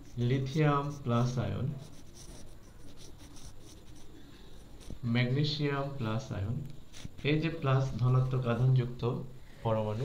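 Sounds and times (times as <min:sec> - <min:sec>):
marker rubbing on whiteboard: 0:00.0 - 0:05.1, 0:06.9 - 0:08.6.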